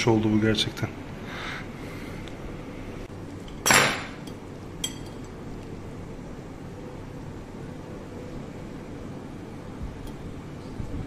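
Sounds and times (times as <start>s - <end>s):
cutlery clattering on plate: 3.6s - 5.3s.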